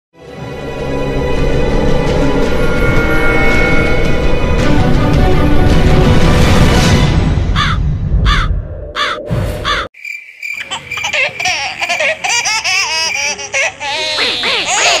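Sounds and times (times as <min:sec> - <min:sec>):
cartoon laughing sound effect: 0:10.6 - 0:15.0.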